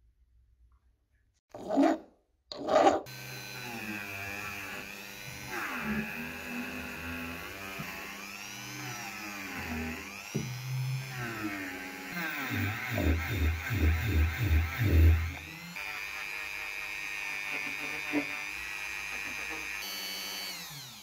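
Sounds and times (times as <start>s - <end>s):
rotary tool wire brush whining: 1.6s - 21.0s.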